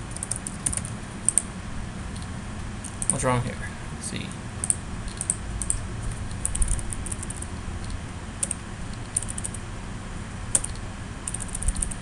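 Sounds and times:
low background hum: 0.0 - 12.0
computer keyboard keystrokes: 0.1 - 1.5, 4.6 - 9.6, 10.5 - 12.0.

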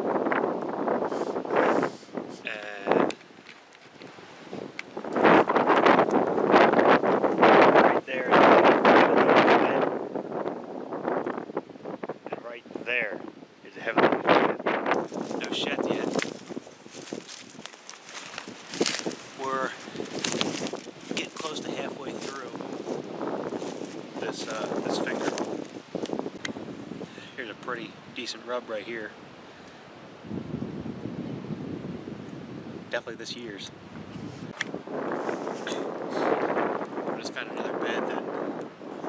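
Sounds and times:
wind buffeting microphone: 0.0 - 39.0
footsteps crunching dry leaves: 15.0 - 26.3
handling noise: 15.0 - 26.3.

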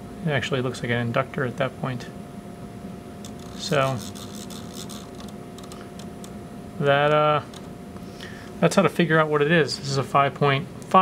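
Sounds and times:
instrument hum: 2.8 - 8.7
knob ticking as it is spun: 3.2 - 6.1.

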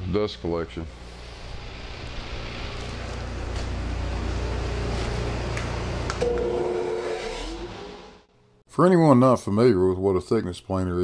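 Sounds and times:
dust collector motor and fan: 0.0 - 7.2
steady high-pitched tone: 6.2 - 8.3.

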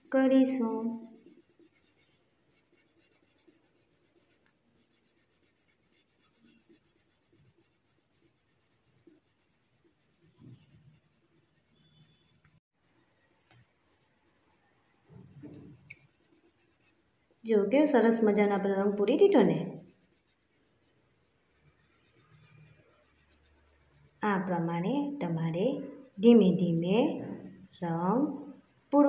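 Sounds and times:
colouring strokes on paper: 0.0 - 29.0.

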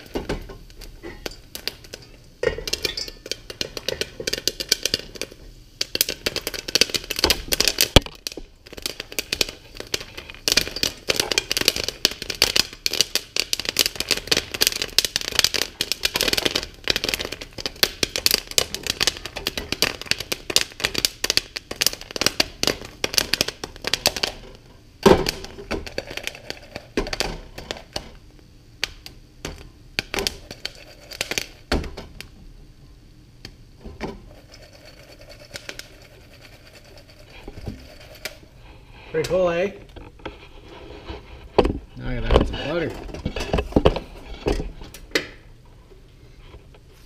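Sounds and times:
rubbing and handling noise: 0.0 - 28.3, 30.2 - 31.7, 34.2 - 47.0
popcorn popping in a pot: 0.0 - 32.6, 33.4 - 40.0, 41.6 - 45.6.

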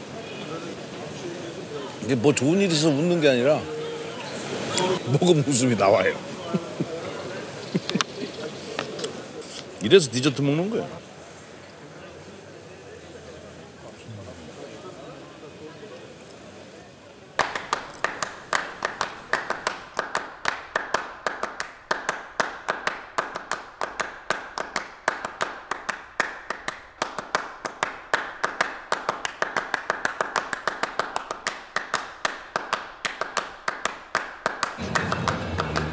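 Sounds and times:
rapid sharp claps: 17.4 - 35.9.

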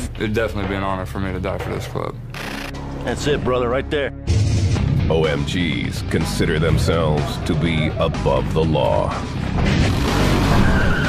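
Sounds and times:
background music with low beat: 0.0 - 11.0
brief squealing tone: 10.4 - 11.0.

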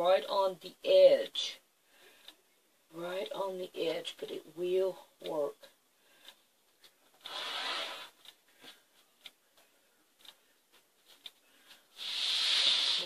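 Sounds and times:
light clicks and taps: 8.2 - 11.9
rotary cutter hissing through fiber: 12.0 - 13.0.

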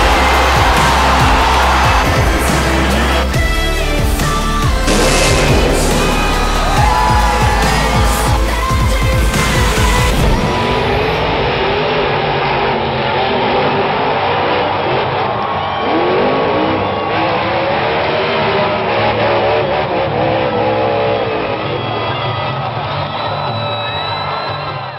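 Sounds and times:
monster truck engine revving: 0.0 - 10.5
music: 0.0 - 24.9.

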